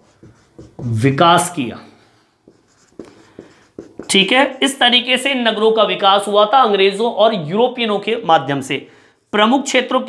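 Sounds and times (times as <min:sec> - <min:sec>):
marker writing on whiteboard: 0:00.0 - 0:05.4
person speaking: 0:00.0 - 0:10.0.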